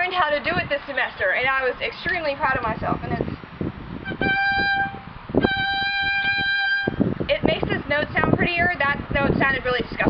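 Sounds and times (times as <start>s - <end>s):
violin held high note with vibrato: 4.0s - 7.0s.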